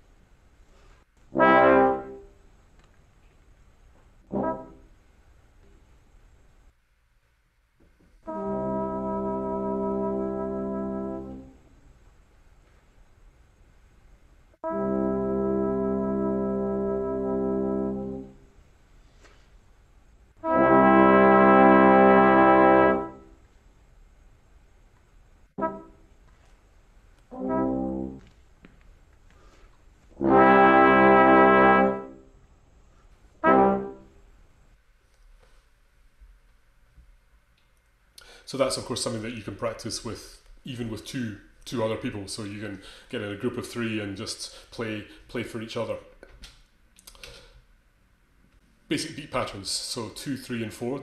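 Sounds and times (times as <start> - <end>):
brass ensemble playing chords: 1.3 - 2.4, 4.2 - 5.0, 8.2 - 11.7, 14.6 - 18.4, 20.4 - 23.4, 25.6 - 26.2, 27.3 - 28.4, 29.4 - 32.3, 33.4 - 34.2.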